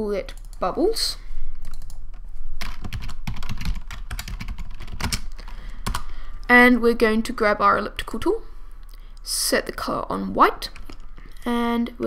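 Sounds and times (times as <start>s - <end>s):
computer keyboard typing: 0.3s - 0.6s, 1.6s - 2.0s, 2.6s - 6.1s, 10.7s - 11.1s.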